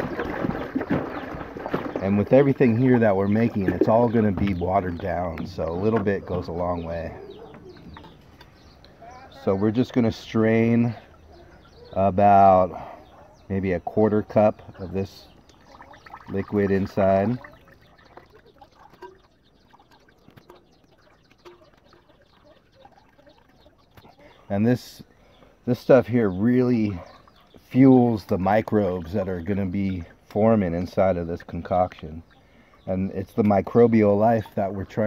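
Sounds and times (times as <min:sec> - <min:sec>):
faint bird chirps: 0:03.3 - 0:13.8, 0:14.4 - 0:30.4.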